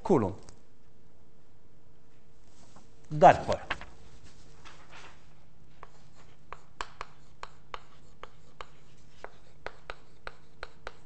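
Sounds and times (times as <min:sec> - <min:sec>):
faint room hum: 0:00.0 - 0:11.0
chalk tapping on blackboard: 0:05.8 - 0:11.0.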